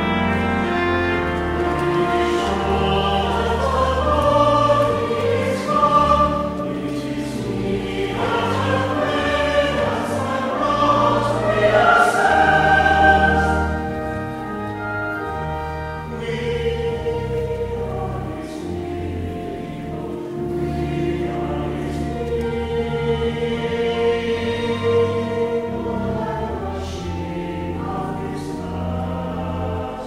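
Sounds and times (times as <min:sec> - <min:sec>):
church choir singing: 0:00.0 - 0:30.0
organ notes: 0:00.0 - 0:30.0.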